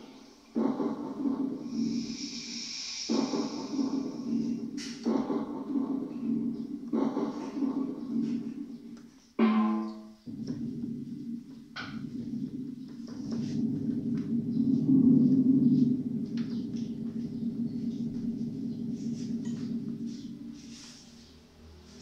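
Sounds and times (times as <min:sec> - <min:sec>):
low rough keyboard tone: 0:03.1 - 0:22.0.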